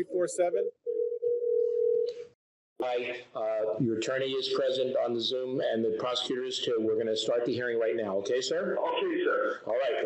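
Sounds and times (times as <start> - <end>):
telephone call tone: 0.9 - 2.1.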